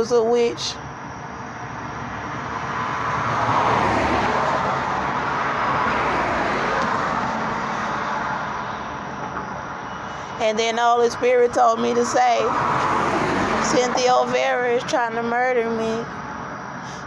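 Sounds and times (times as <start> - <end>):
road vehicle passing by: 0.6 - 15.0.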